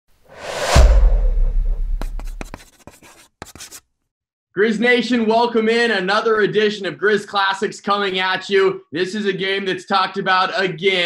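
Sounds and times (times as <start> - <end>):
whoosh into deep boom: 0.3 - 2.2
chalk scratching on chalkboard: 1.7 - 3.8.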